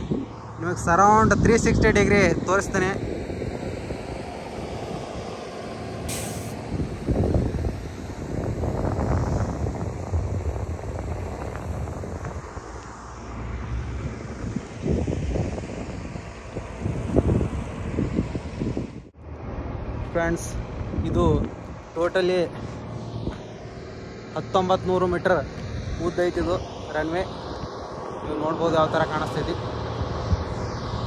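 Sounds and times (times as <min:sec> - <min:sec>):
heavy vehicle engine rumble: 0:00.0 - 0:31.0
short hiss: 0:06.1 - 0:06.6.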